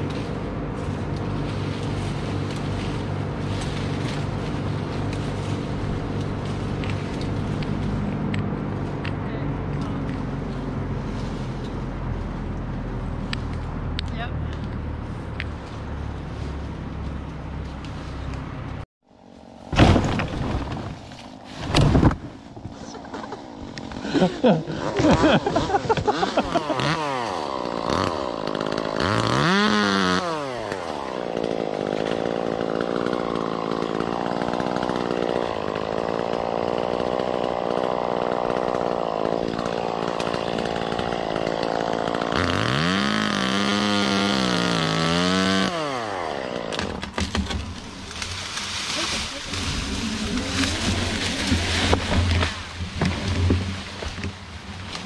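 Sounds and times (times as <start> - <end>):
chainsaw revving: 23.0 - 54.3.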